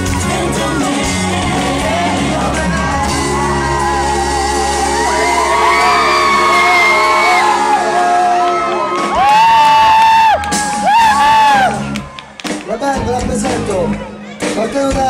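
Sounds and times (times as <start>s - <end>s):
man singing: 0.0s - 7.0s, 12.7s - 15.0s
live pop band: 0.0s - 15.0s.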